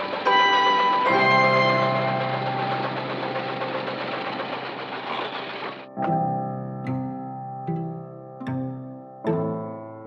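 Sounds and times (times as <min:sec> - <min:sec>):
musical score tones: 0:00.0 - 0:04.1.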